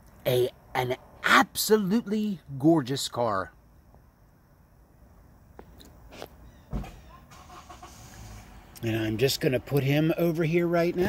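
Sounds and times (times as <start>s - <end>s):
dull thump: 6.7s - 7.1s.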